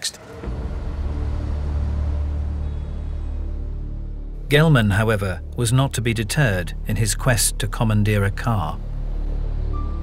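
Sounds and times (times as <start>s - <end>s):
low rumbling drone: 0.0s - 10.0s.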